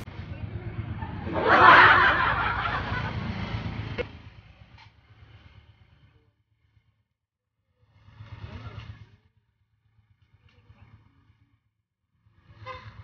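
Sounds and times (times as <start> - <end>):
motor vehicle passing: 0.0 - 13.0.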